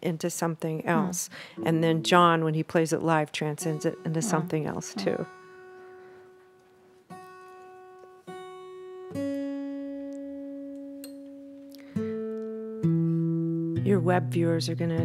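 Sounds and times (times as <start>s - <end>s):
acoustic guitar strings plucked: 0.9s - 14.1s.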